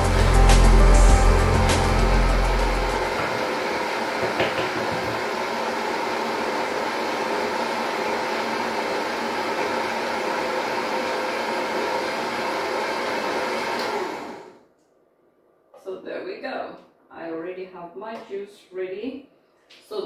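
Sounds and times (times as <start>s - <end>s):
electric juicer motor whine: 0.0s - 14.6s.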